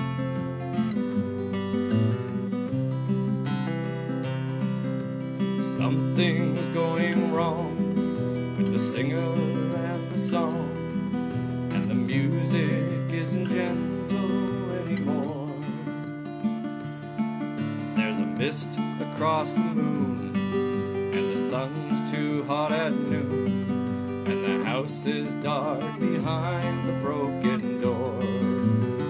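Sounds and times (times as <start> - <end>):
acoustic guitar strummed chords: 0.0 - 29.0
man singing slow song: 5.6 - 16.3, 17.8 - 29.0.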